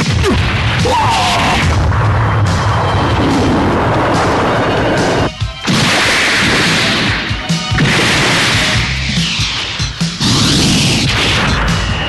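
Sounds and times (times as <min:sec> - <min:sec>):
dramatic music: 0:00.0 - 0:12.0
loud crashing sound effect: 0:00.1 - 0:12.0.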